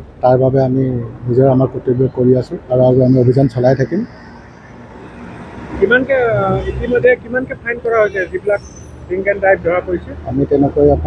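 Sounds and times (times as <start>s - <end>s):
car engine rumbling: 0.0s - 11.0s
road traffic: 0.0s - 11.0s
man's voice: 0.2s - 4.1s.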